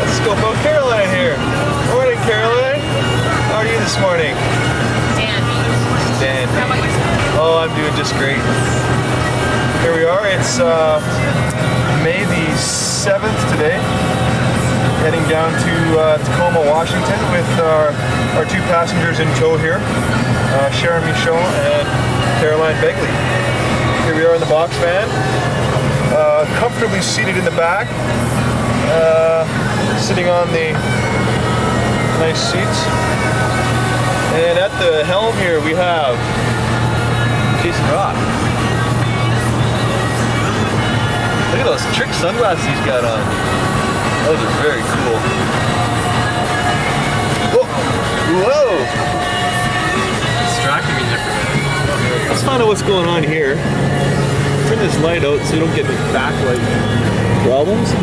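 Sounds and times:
music: 0:00.0 - 0:58.0
van engine drone: 0:00.0 - 0:58.0
voices: 0:00.0 - 0:58.0.

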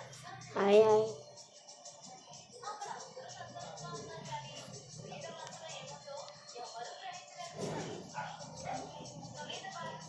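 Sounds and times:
film song from phone: 0:00.0 - 0:10.0.

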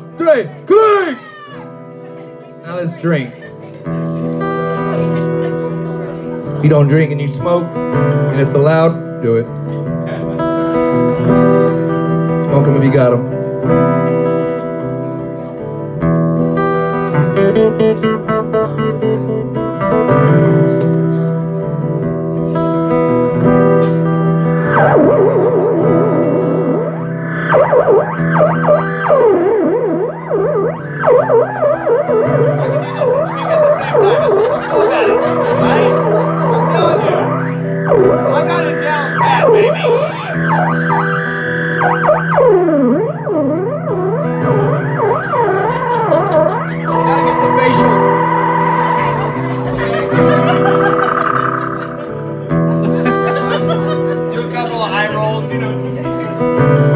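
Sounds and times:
looping guitar chord tone: 0:00.0 - 0:56.9
swooping guitar pitch glides: 0:00.0 - 0:56.9.

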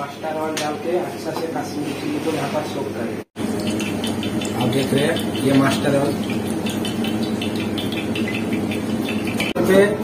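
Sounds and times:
oil trickling into steel bowl: 0:03.4 - 0:09.6.

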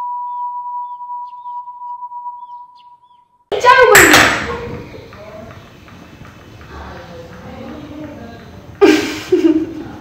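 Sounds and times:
steady electronic beep tone: 0:00.0 - 0:03.0.

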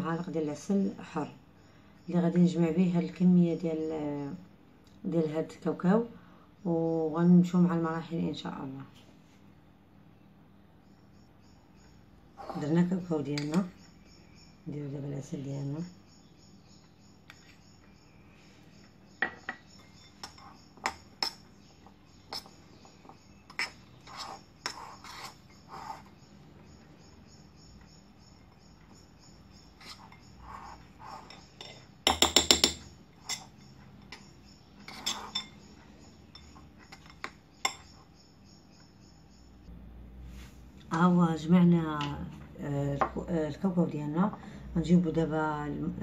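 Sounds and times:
spoon scraping a bowl: 0:12.3 - 0:12.8, 0:19.6 - 0:26.3, 0:28.4 - 0:38.1.

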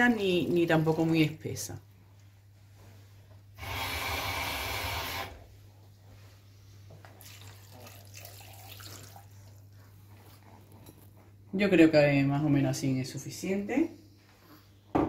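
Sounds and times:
water pouring: 0:00.0 - 0:01.4, 0:07.1 - 0:09.6.

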